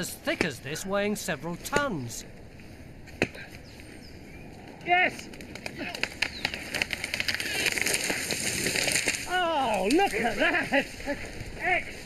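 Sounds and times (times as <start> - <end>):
tree falling with snapping branches: 5.1 - 11.4.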